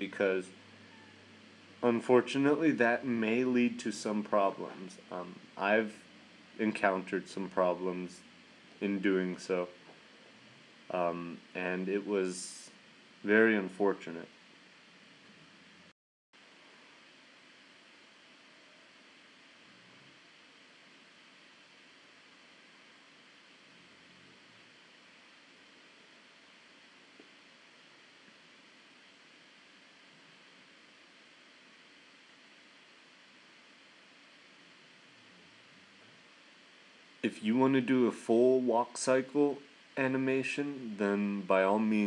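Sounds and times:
faint recording hiss: 0.0s - 42.0s.

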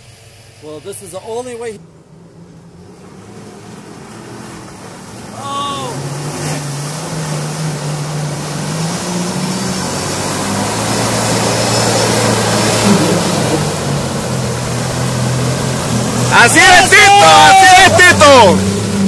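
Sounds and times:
engine pulling hard under load: 0.0s - 19.0s.

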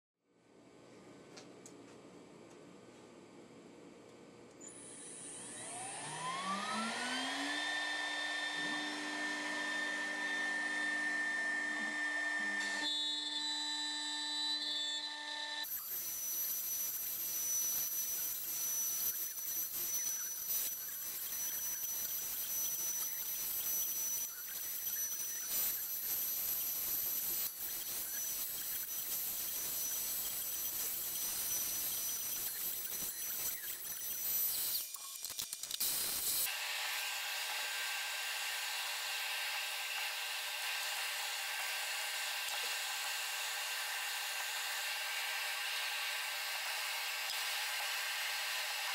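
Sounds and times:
router spindle whine: 4.5s - 35.0s, 35.8s - 48.9s
router bit cutting fiberboard: 4.7s - 35.0s, 35.7s - 48.9s.

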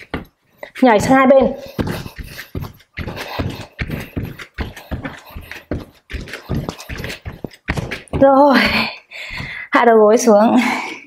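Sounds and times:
bare feet thudding on a mat: 0.0s - 9.6s.

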